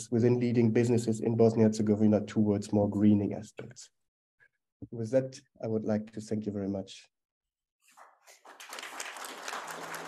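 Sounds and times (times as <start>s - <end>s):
audience applauding: 7.9s - 10.0s.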